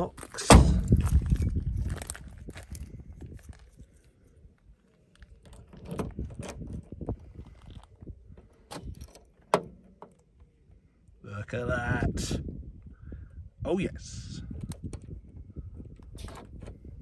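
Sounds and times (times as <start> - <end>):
car keys jangling: 8.5 - 10.2
key in car door lock: 8.6 - 10.2.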